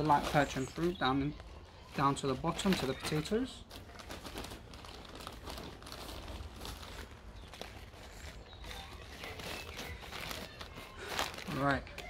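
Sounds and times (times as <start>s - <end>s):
plastic rustling: 0.0s - 12.0s.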